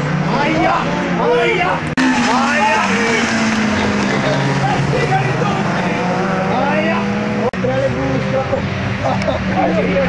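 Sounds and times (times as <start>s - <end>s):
car engine running: 1.1s - 10.0s.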